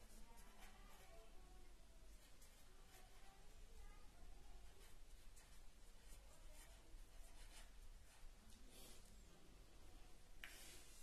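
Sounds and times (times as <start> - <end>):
marker scratching on paper: 0.0 - 1.1, 2.1 - 3.3, 4.6 - 8.2.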